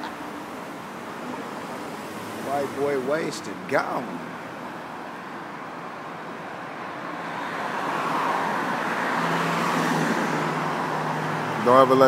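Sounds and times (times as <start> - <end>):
car driving past: 7.1 - 12.0.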